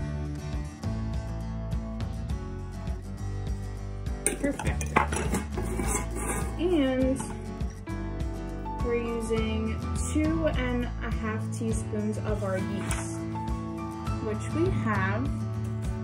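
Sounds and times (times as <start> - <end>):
background music: 0.0 - 16.0
metal cup clinking against bowl: 4.3 - 7.4.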